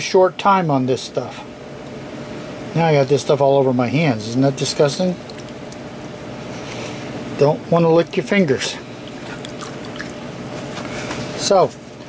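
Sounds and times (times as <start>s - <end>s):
room hum: 0.0s - 12.0s
water dripping and splashing: 5.2s - 5.9s, 9.0s - 10.3s
fingers swishing in water: 9.0s - 11.0s.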